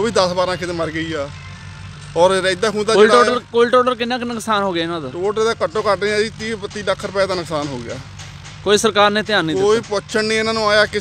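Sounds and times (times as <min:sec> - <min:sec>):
low engine drone: 0:00.0 - 0:11.0
man speaking: 0:02.2 - 0:08.0, 0:08.7 - 0:11.0.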